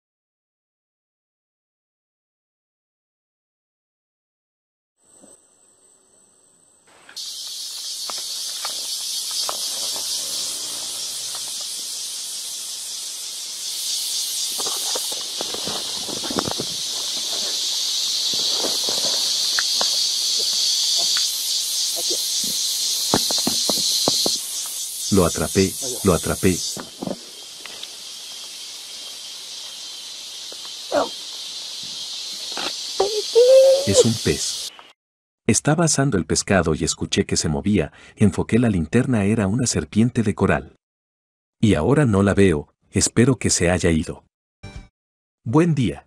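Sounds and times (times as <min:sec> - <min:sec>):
insects chorus: 0:06.8 - 0:34.9
rustles in vegetation: 0:06.9 - 0:34.9
faint high tone: 0:33.0 - 0:34.2.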